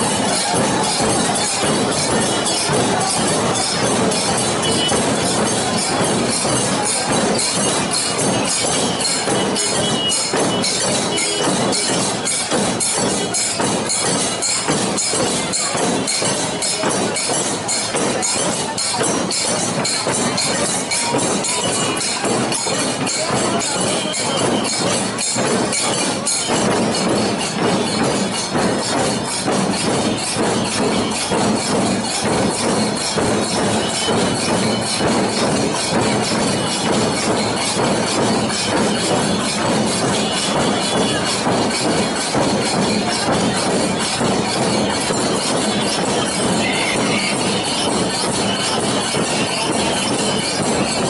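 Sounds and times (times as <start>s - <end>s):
crowd beating chests in unison: 0.0s - 51.0s
crowd noise: 0.0s - 51.0s.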